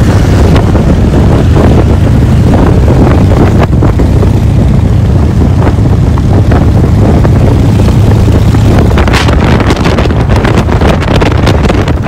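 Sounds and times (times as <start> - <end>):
motorcycle engine drone: 0.0 - 12.0
wind buffeting microphone: 0.0 - 12.0.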